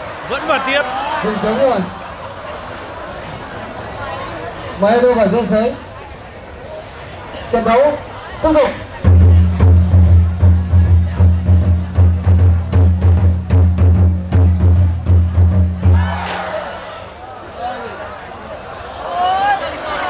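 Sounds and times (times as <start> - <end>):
crowd voices: 0.0 - 20.0.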